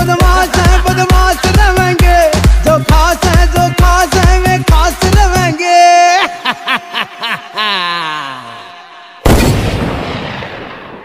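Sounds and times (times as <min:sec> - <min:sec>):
loud deep boom: 0:09.3 - 0:11.0.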